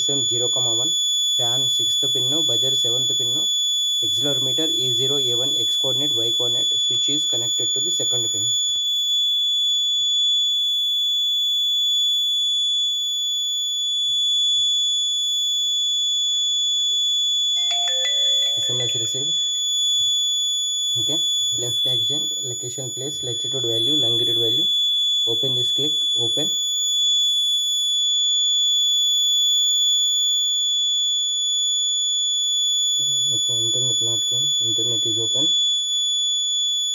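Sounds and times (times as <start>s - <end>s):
piezo alarm buzzer tone: 0.0s - 36.9s
high-pitched buzzer alarm: 13.4s - 28.4s
phone message chime: 17.6s - 19.5s.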